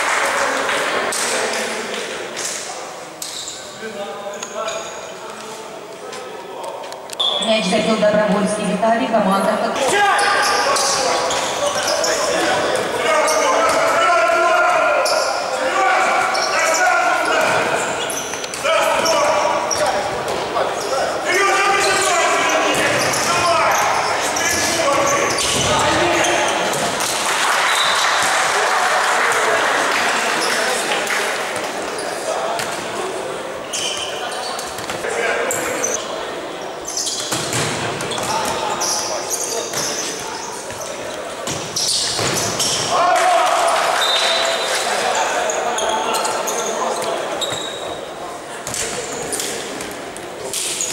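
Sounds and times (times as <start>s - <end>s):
players shouting: 42.6s - 46.8s.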